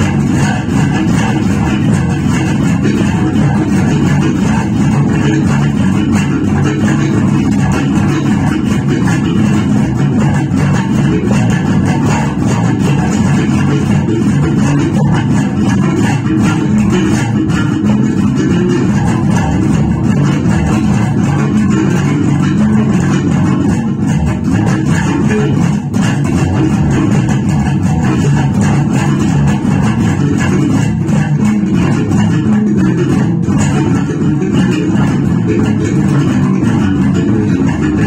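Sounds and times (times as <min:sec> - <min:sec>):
electric bass guitar fingerstyle: 0:00.0 - 0:38.0.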